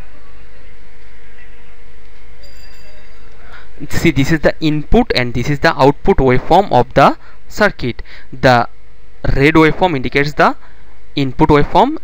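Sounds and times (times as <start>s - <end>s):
faint constant hum: 0.0s - 12.0s
low rumble and hiss: 0.0s - 12.0s.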